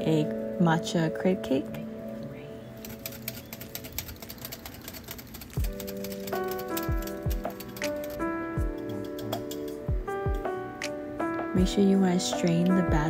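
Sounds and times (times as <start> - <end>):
whisk clicking against ceramic bowl: 2.8 - 8.2, 8.8 - 9.8
background music with a beat: 5.6 - 13.0.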